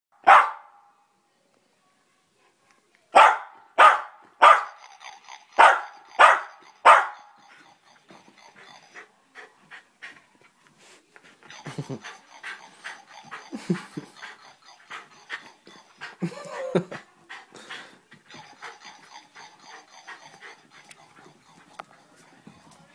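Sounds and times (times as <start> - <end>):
small dog barking: 0.2 - 0.8, 3.1 - 4.8, 5.6 - 7.3.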